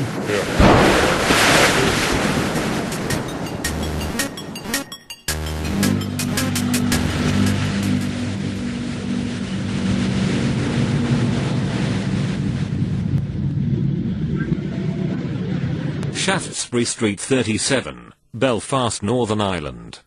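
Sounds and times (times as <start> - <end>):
loud rushing noise: 0.6 - 4.4, 5.7 - 12.7
low musical drone: 2.4 - 11.0.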